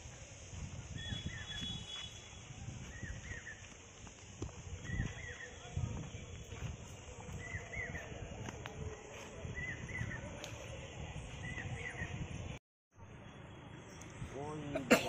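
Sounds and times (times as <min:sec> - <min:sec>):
high drone of insects: 0:00.0 - 0:12.0.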